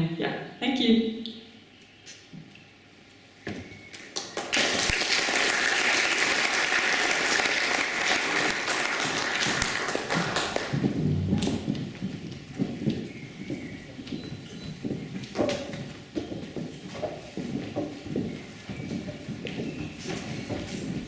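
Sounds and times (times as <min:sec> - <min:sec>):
audience applauding: 0:04.0 - 0:11.6
low thumps: 0:10.2 - 0:21.0.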